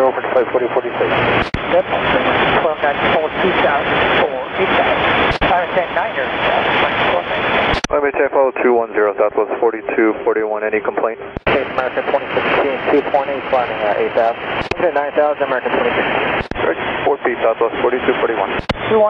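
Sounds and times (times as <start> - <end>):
radio voices with static: 0.0 - 19.0
radio transmission click: 7.7 - 8.0, 14.6 - 14.9, 16.4 - 16.7, 18.5 - 18.8.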